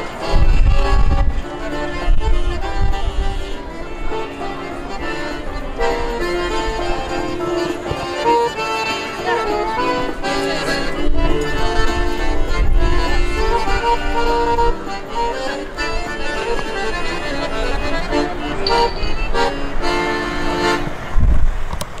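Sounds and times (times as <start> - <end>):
piano accordion playing a tune: 0.0 - 21.4.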